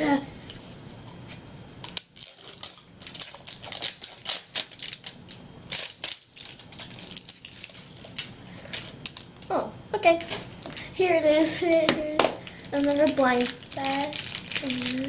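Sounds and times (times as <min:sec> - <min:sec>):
plastic wrapping crinkling: 0:01.8 - 0:15.0.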